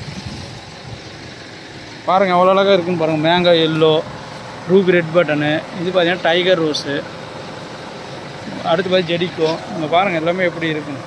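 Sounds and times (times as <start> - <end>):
steady background noise: 0.0 - 11.0
man speaking: 2.1 - 7.1, 8.4 - 11.0.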